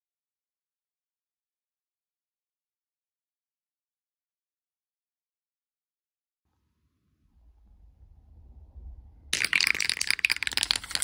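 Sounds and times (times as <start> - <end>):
aerosol can ball rattling: 9.4 - 11.0.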